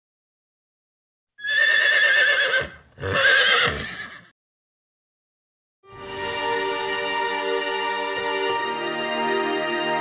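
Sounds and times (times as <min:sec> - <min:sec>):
horse whinnying: 0:01.4 - 0:04.3.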